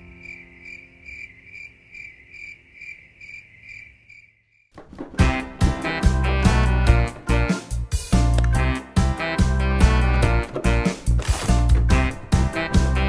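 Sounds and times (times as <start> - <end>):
crickets chirping: 0.0 - 4.7.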